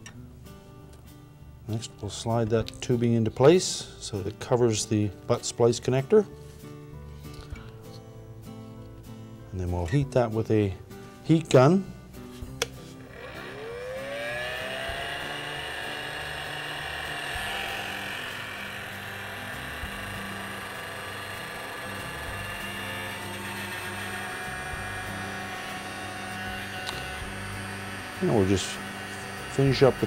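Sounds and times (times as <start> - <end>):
heat gun fan whirring: 12.5 - 30.0
heat gun switch click: 26.8 - 27.1.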